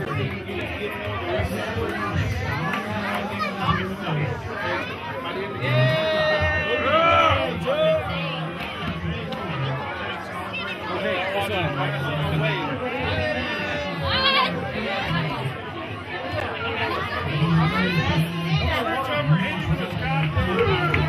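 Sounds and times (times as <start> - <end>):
crowd talking: 0.0 - 21.0.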